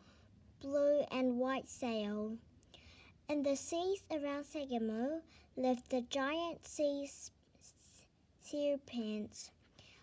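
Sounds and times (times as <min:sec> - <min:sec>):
faint breath: 0:00.0 - 0:00.4, 0:02.7 - 0:03.2, 0:05.2 - 0:05.6, 0:09.6 - 0:10.0
woman reading aloud: 0:00.6 - 0:02.4, 0:03.3 - 0:09.6.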